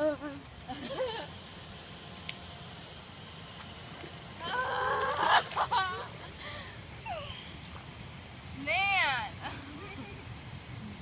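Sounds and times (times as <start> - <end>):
low background hiss: 0.0 - 11.0
girl squealing: 4.4 - 5.4.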